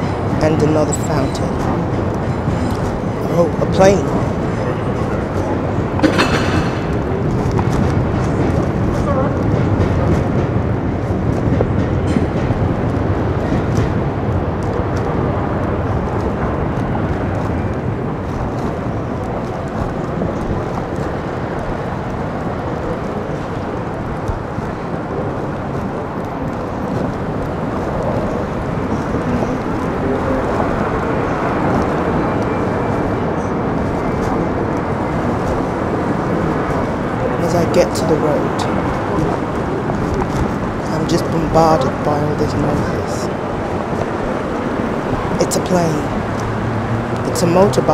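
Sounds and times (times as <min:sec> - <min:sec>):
indistinct voices: 0:00.0 - 0:10.3, 0:26.4 - 0:44.2, 0:44.9 - 0:46.6, 0:47.2 - 0:47.9
city traffic noise: 0:00.0 - 0:47.9
plane rumbling overhead: 0:00.0 - 0:47.9.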